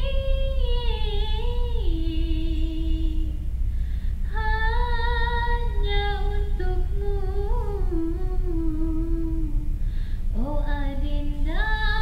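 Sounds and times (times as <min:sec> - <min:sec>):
woman singing: 0:00.0 - 0:03.5, 0:04.3 - 0:09.8, 0:10.4 - 0:12.0.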